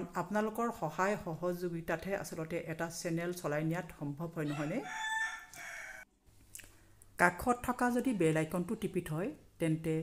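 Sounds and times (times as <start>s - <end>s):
rooster crowing: 4.5s - 6.1s.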